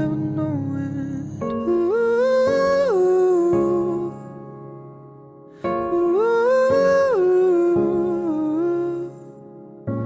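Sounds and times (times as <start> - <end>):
wordless sung vocal: 0.0 - 4.5, 5.6 - 9.4.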